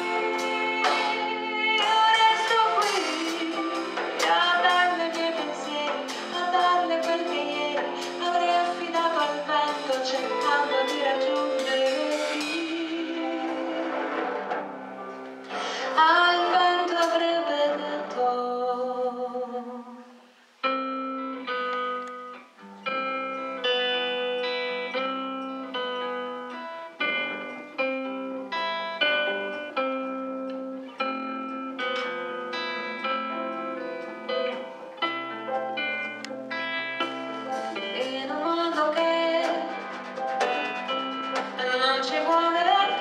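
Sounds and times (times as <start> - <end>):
woman singing: 0.0 - 14.3, 15.8 - 20.2, 37.6 - 40.0, 41.4 - 43.0
plucked guitar notes: 20.6 - 43.0.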